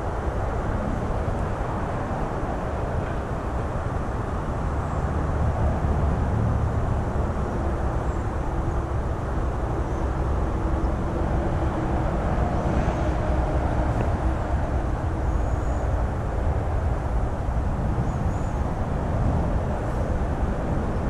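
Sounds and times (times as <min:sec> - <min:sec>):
low outdoor rumble: 0:00.0 - 0:21.0.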